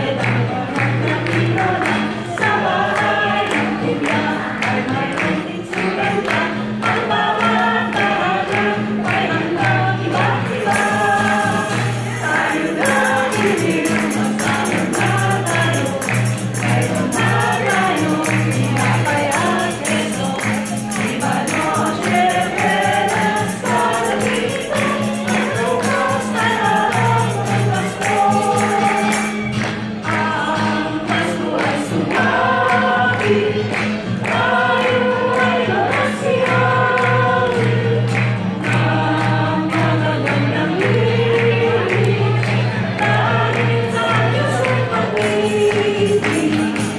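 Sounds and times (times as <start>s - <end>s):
acoustic guitar: 0.0s - 46.9s
choir singing a carol: 0.0s - 46.9s
tambourine: 10.6s - 29.6s, 43.1s - 46.9s.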